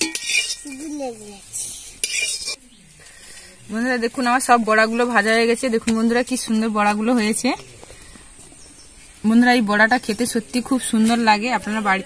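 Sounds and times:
spatula scraping metal pan: 0.0 - 1.0, 2.0 - 2.6.

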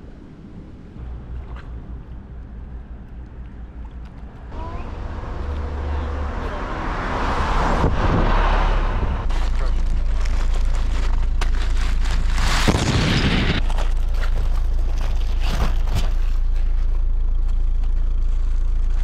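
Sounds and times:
low rumble on microphone: 0.0 - 19.0
plastic bag rustling and crinkling: 9.2 - 17.0.

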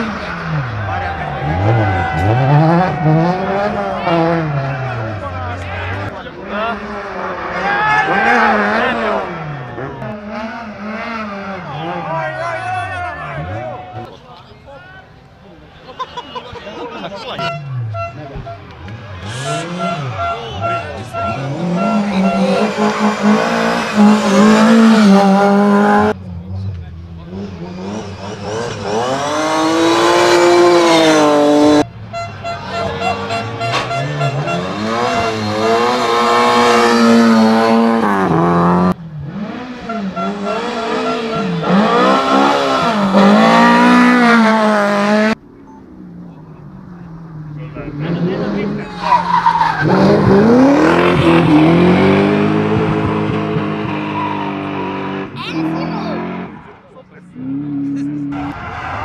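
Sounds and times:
rally car engines revving past: 0.0 - 14.2, 16.8 - 59.0.

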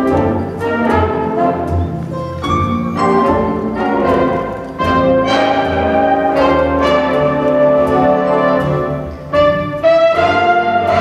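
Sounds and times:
jazz big band chords: 0.0 - 11.0.

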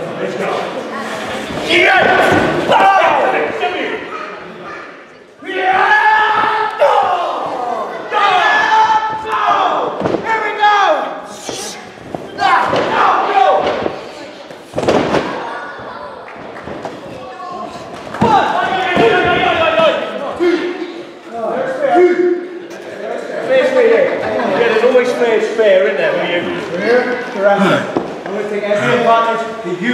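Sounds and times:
shouting voices: 5.4 - 13.9
thuds: 12.0 - 14.0, 14.7 - 15.4.

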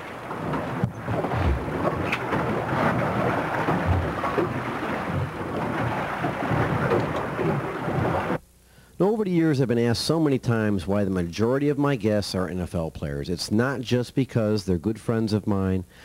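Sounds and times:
sea wash: 0.0 - 8.4.

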